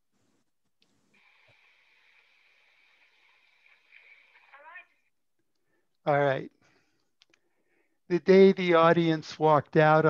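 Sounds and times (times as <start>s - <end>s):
faint phone line hiss: 1.2s - 5.1s.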